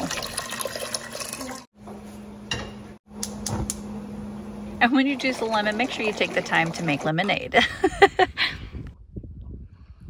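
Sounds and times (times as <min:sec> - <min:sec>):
liquid pouring into metal pot: 0:00.0 - 0:01.7.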